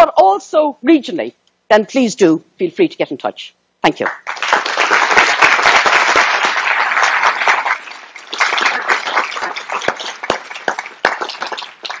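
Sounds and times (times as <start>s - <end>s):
audience applauding: 4.1s - 12.0s.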